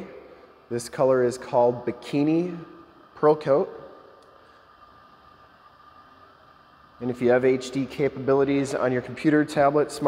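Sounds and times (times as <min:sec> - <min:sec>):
low hiss: 0:00.0 - 0:10.0
thin high hum: 0:00.0 - 0:10.0.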